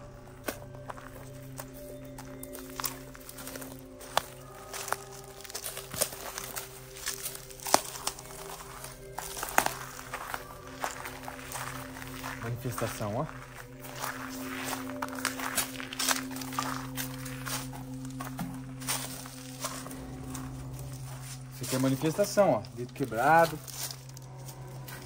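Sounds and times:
background music: 0.0 - 25.0
footsteps on dry leaves: 0.0 - 25.0.

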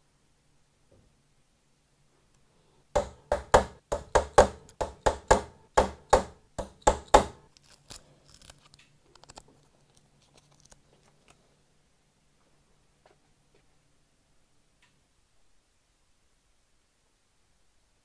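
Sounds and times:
paper crinkling and ticks: 7.5 - 11.4.

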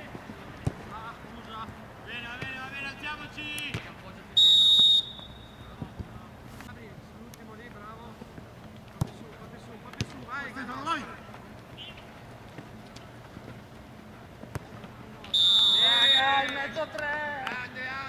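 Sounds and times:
referee's whistle blast: 4.4 - 5.8, 15.3 - 17.0
players shouting: 15.4 - 18.0.

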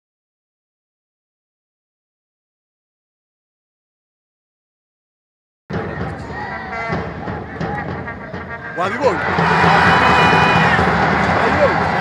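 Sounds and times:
background music: 5.7 - 12.0
commentator speaking: 7.6 - 9.3.

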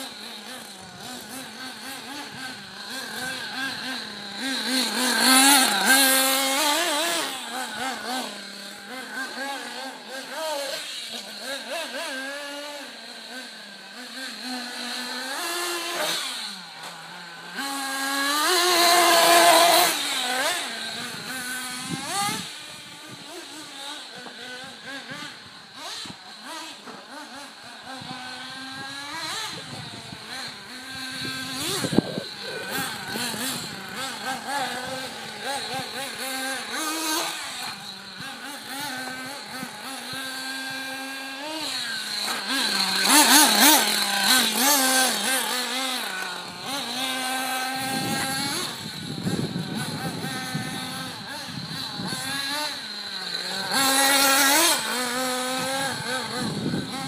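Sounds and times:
rc car engine revving: 0.0 - 57.0.

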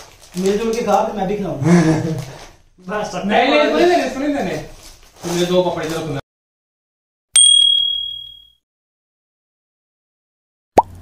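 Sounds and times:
bell ringing: 7.4 - 8.6.

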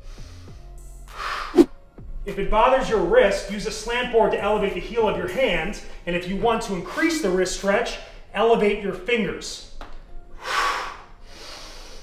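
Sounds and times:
man breathing in: 0.0 - 1.7, 10.4 - 12.0.

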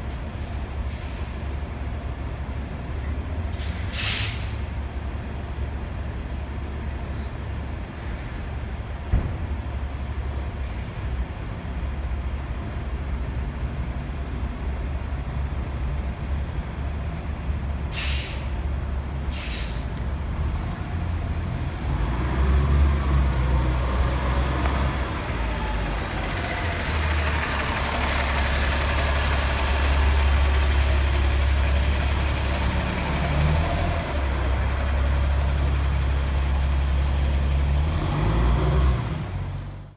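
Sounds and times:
bus engine running: 0.0 - 39.9
air brake hisses: 3.5 - 4.8, 7.1 - 8.5, 17.9 - 18.6, 19.3 - 19.9.

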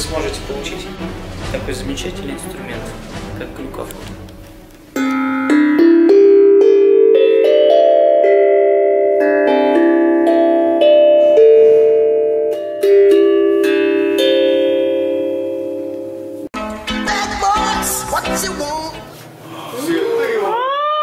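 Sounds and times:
steel tongue drum melody: 0.0 - 18.5.

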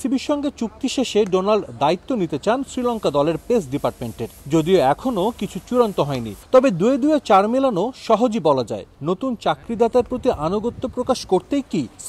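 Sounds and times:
narrator talking: 0.0 - 12.0.

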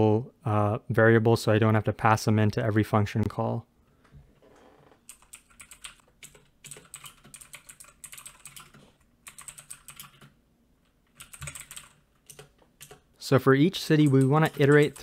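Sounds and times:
computer keyboard typing: 5.0 - 13.1, 13.9 - 15.0.

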